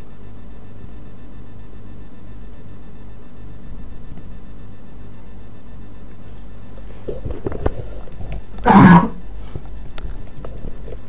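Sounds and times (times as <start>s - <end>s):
man coughing: 8.6s - 9.2s.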